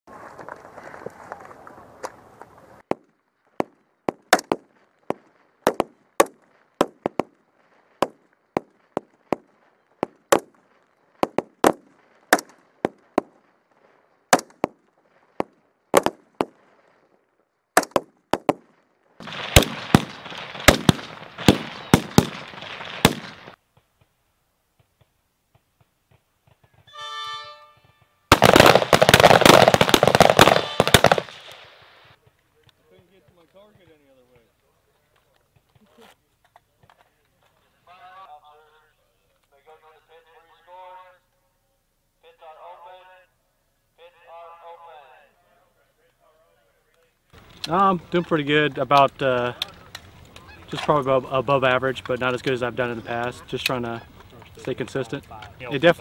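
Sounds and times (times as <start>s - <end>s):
rifle shots: 3.6s - 7.4s, 11.2s - 13.5s, 14.3s - 16.7s, 17.8s - 23.6s, 28.3s - 32.2s.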